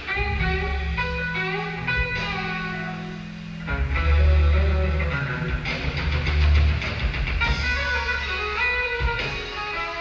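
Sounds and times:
drums: 0:00.0 - 0:10.0
electric guitar: 0:00.0 - 0:10.0
low bass notes: 0:00.0 - 0:10.0.

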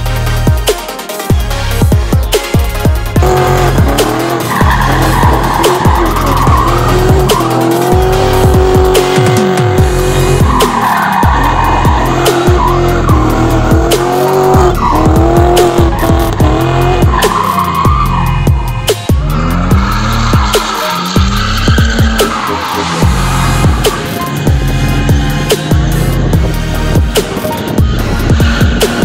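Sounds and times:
electronic music with heavy bass: 0:00.0 - 0:29.0
car engines revving: 0:01.4 - 0:29.0
tyres squealing: 0:03.2 - 0:29.0.

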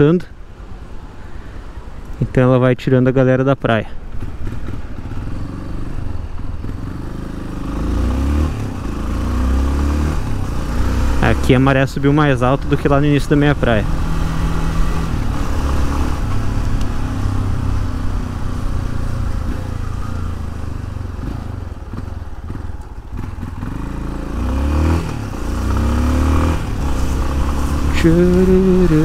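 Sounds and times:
motorcycle engine running: 0:04.1 - 0:29.0.

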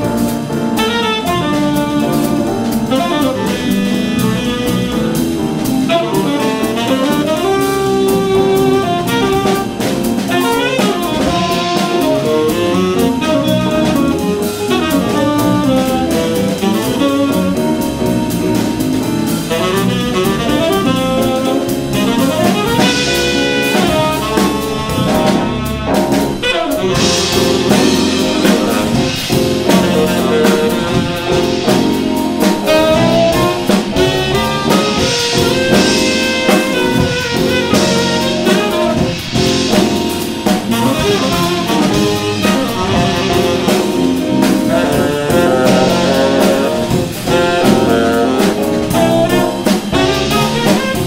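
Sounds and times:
drum kit with cymbals: 0:00.0 - 0:51.0
electric bass guitar: 0:00.0 - 0:51.0
electric keyboard: 0:00.0 - 0:51.0
saxophone: 0:00.0 - 0:51.0.

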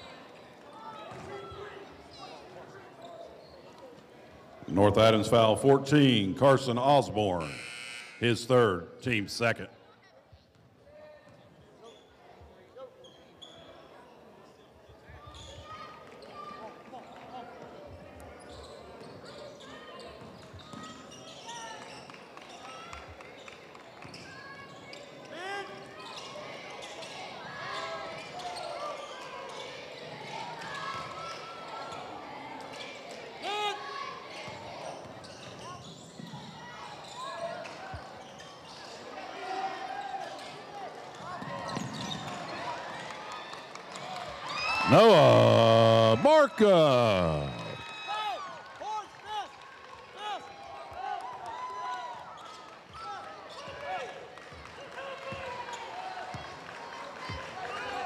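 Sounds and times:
crowd calling out and chattering: 0:44.7 - 0:47.9.

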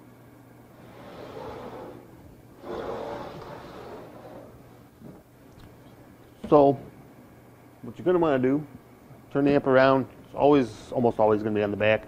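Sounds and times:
steady low hum: 0:00.0 - 0:12.0
amplifier cabinet scraping on table: 0:00.8 - 0:04.7.

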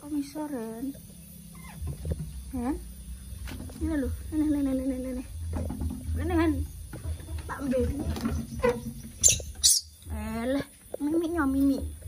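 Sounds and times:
small animal squeaking: 0:01.4 - 0:03.0, 0:07.7 - 0:10.7.

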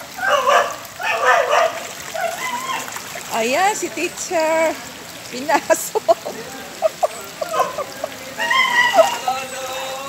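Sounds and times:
dog barking: 0:00.2 - 0:02.8, 0:07.5 - 0:09.2.

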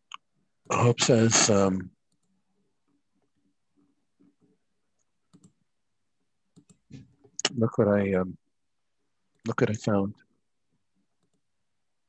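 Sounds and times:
person speaking: 0:00.6 - 0:02.0.

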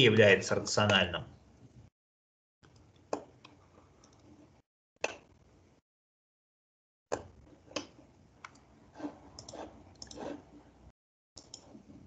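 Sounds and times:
computer mouse clicking: 0:02.7 - 0:04.3, 0:09.4 - 0:10.4, 0:11.4 - 0:11.8.

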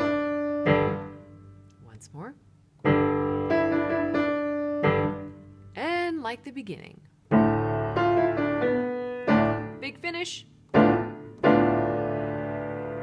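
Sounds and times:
piano playing slow chords: 0:00.0 - 0:01.8, 0:02.8 - 0:05.8, 0:07.3 - 0:09.8, 0:10.6 - 0:13.0.

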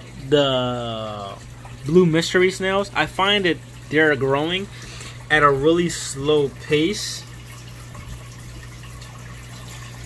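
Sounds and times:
air bubbles stream: 0:00.0 - 0:10.0
filter water splashing: 0:00.0 - 0:10.0.

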